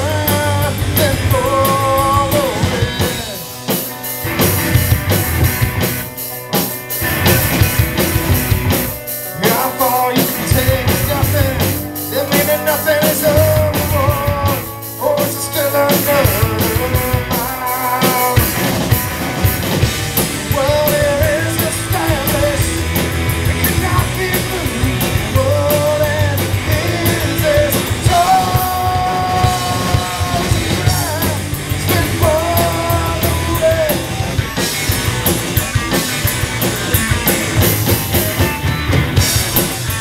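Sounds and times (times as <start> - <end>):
lead vocals singing: 0.0 - 3.8, 9.4 - 19.1, 20.2 - 34.6
rock band playing loud: 0.0 - 40.0.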